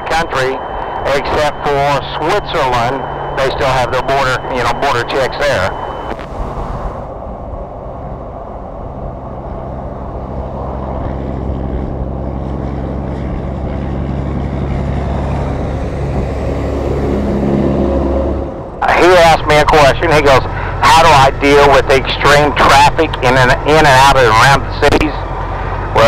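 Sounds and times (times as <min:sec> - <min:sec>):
vehicle engine drone: 0:00.0 - 0:26.0
wind and tyre noise: 0:00.0 - 0:26.0.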